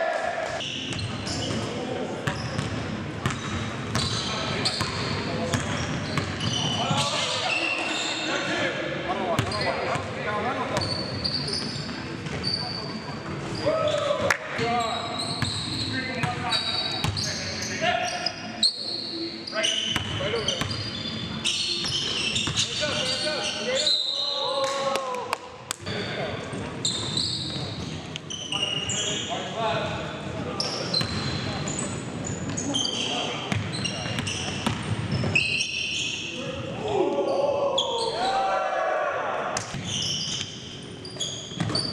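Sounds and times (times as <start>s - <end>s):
sneaker squeaks: 0.6s - 8.5s, 9.4s - 10.1s, 10.7s - 24.6s, 25.8s - 29.6s, 30.6s - 38.4s, 39.6s - 41.9s.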